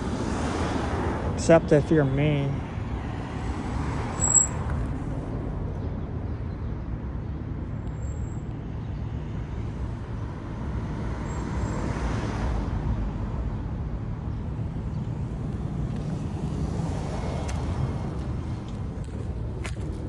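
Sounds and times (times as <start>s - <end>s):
street traffic rumble: 0.0s - 20.0s.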